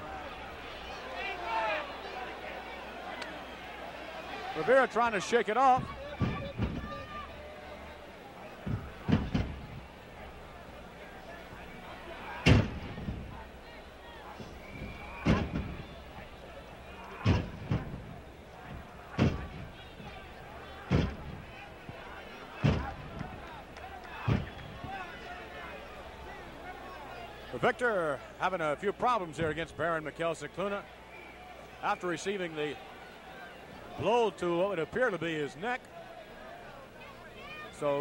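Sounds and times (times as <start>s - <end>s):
arena crowd murmur: 0.0s - 38.0s.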